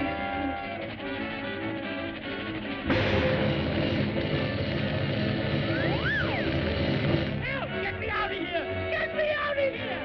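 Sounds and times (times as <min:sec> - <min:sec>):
rumbling rush of sound effects: 0:02.9 - 0:07.8.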